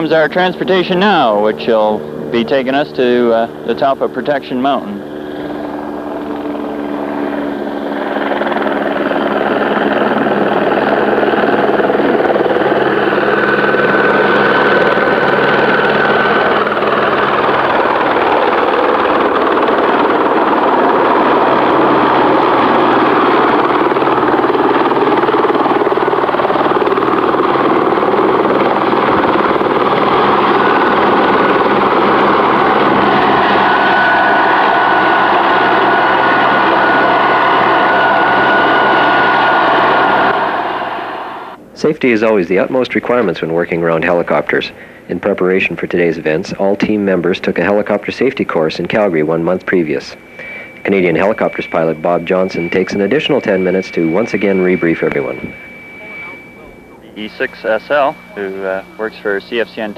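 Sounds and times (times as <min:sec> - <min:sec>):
helicopter rotor and engine: 0:00.0 - 0:41.6, 0:42.2 - 0:59.9
faint high whine: 0:00.0 - 0:59.9.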